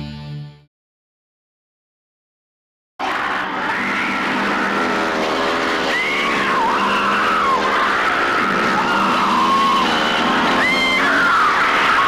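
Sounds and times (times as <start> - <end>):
high gliding squeals: 3.0 - 12.0.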